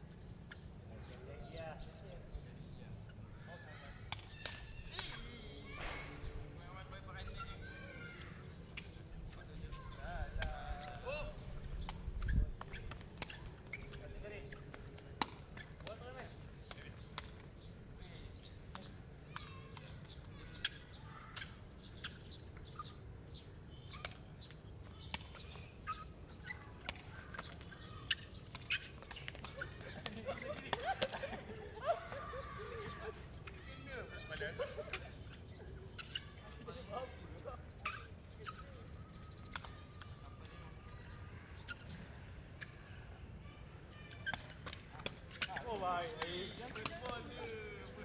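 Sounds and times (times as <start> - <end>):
players shouting: 31.6 - 35.1.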